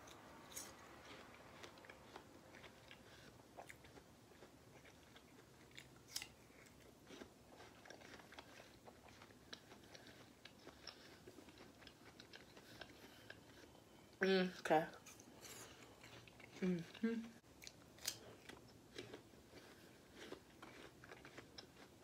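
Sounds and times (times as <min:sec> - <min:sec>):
chewing and biting pear: 0:00.0 - 0:13.9, 0:15.0 - 0:22.0.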